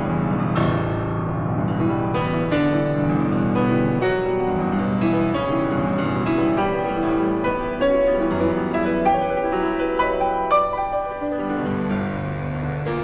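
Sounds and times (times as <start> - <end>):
classical piano music: 0.0 - 13.0.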